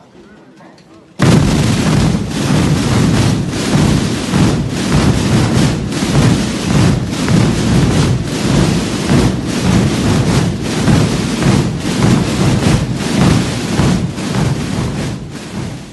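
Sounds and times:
massed drums rumbling: 0:01.2 - 0:15.9.

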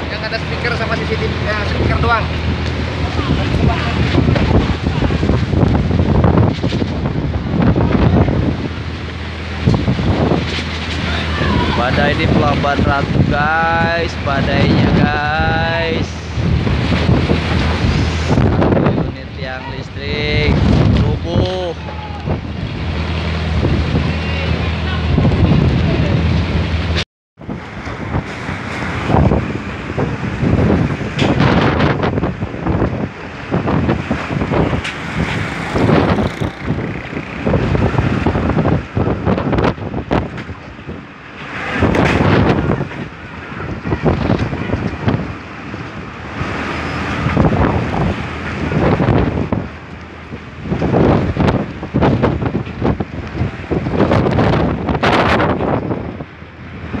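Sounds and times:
strong wind buffeting microphone: 0:00.0 - 0:57.0.

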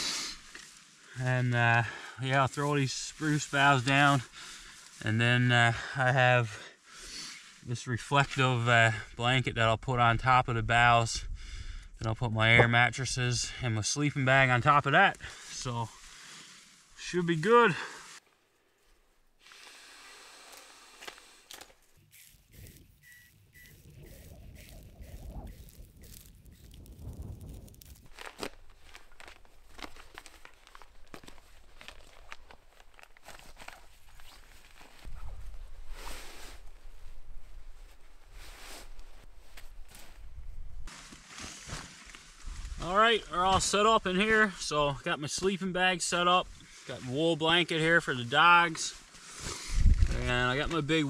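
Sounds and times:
footsteps: 0:20.5 - 0:35.5
low rumble: 0:23.8 - 0:28.1
bedding rustling and crinkling: 0:24.6 - 0:35.5.

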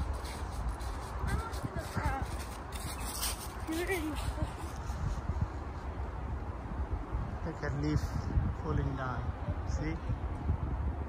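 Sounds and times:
footsteps shuffling through leaves: 0:00.0 - 0:05.2.

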